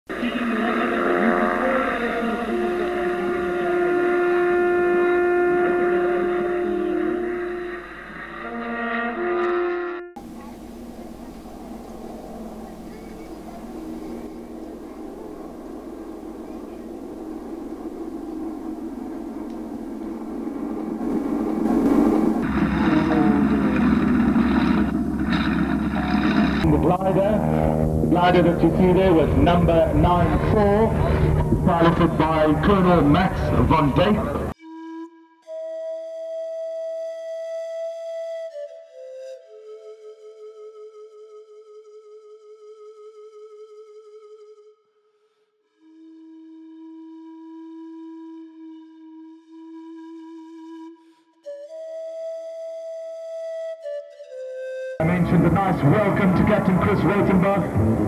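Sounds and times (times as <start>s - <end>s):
aircraft engine drone: 0.1s - 34.6s, 54.9s - 58.0s
music with held horn-like notes: 0.2s - 36.0s, 41.0s - 51.9s
wind noise: 10.2s - 34.6s.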